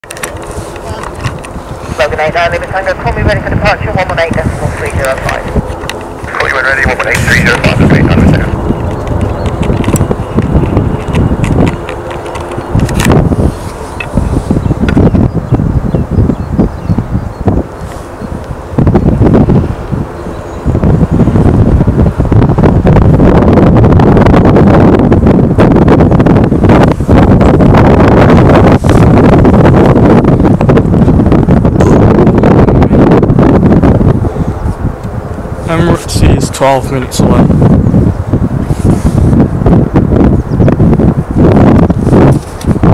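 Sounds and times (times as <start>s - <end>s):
strong wind buffeting microphone: 0.0s - 42.9s.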